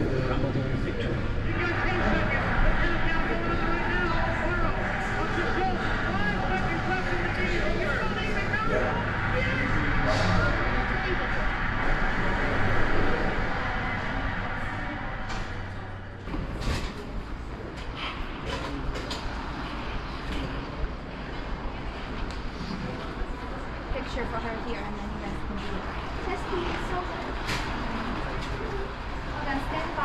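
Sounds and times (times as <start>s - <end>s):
crowd cheering on tv: 0.0s - 17.6s
announcer talking: 1.4s - 14.2s.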